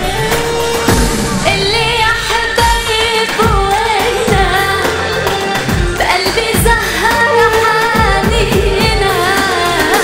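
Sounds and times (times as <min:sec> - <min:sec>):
musical accompaniment with percussion: 0:00.0 - 0:10.0
woman singing into microphone: 0:00.0 - 0:10.0.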